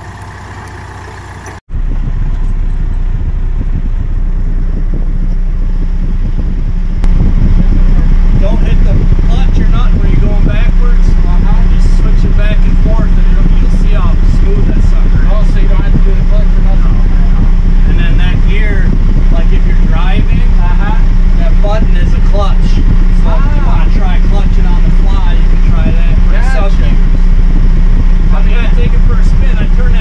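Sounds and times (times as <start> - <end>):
tractor diesel engine idling: 0.0 - 1.6.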